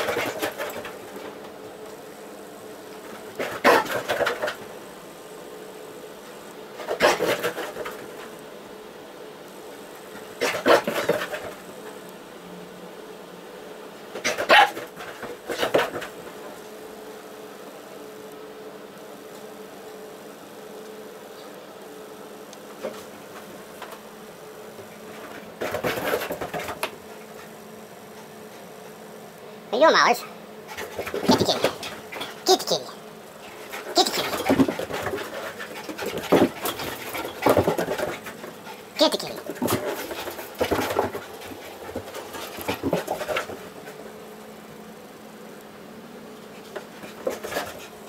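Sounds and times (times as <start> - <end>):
dog vocal burst: 3.4 - 4.5, 6.8 - 7.9, 10.4 - 11.6, 29.8 - 43.6
dog barking: 3.6 - 4.0, 14.2 - 14.8.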